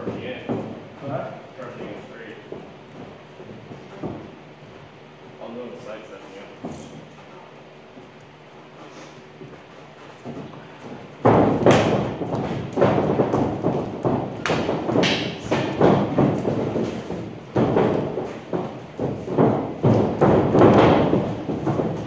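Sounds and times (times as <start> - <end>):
dull thump on padded floor: 10.2 - 22.0.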